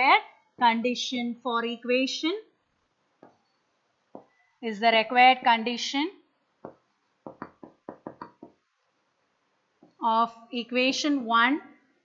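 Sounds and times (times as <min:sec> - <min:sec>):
stylus tapping on tablet: 0:03.2 - 0:03.5, 0:04.1 - 0:04.4, 0:06.6 - 0:08.7.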